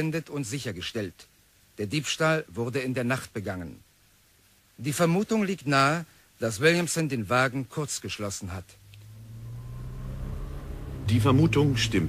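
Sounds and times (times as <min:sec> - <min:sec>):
car engine running: 0:08.8 - 0:12.0.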